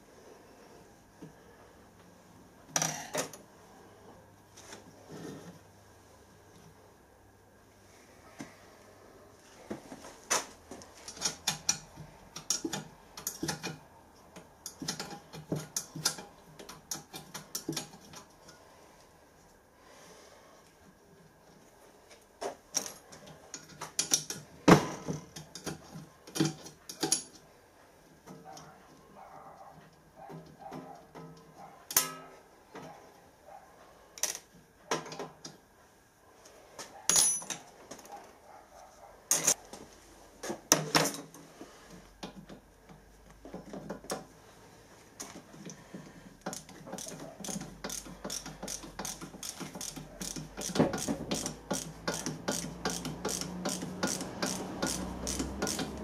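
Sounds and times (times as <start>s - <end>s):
screwdriver ratcheting clicks: 46.5s - 56.0s.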